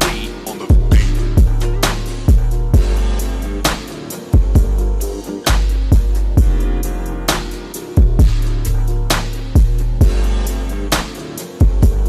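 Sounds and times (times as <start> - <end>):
keyboard chords: 0.0 - 12.0
sustained bass: 0.0 - 12.0.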